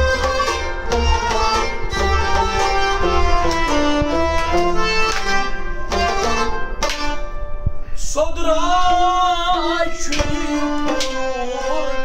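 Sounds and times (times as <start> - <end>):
rubab melody: 0.0 - 8.0, 8.8 - 12.0.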